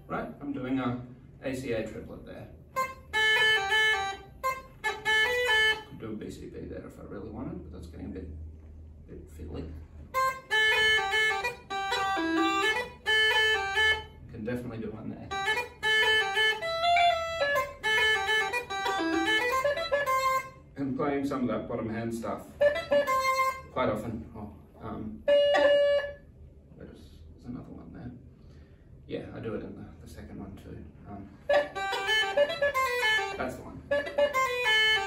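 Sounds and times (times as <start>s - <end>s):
uilleann pipes chanter playing: 2.7s - 6.0s, 10.1s - 14.2s, 15.3s - 20.7s, 22.5s - 23.8s, 25.2s - 26.3s, 31.5s - 35.0s.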